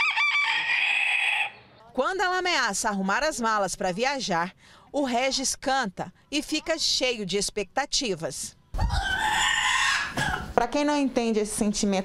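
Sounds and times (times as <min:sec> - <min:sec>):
rooster crowing: 0:00.0 - 0:01.6, 0:08.8 - 0:10.5.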